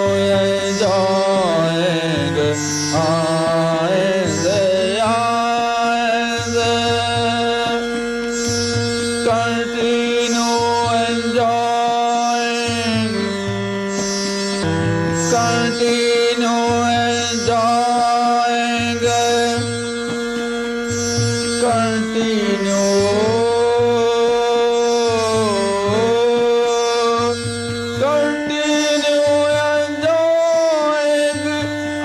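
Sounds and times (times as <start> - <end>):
person singing devotional song: 0.0 - 32.0.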